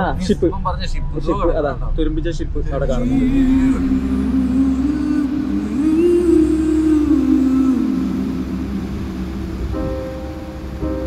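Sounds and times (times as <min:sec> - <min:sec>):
vehicle engine droning: 0:00.0 - 0:11.0
music: 0:03.9 - 0:11.0.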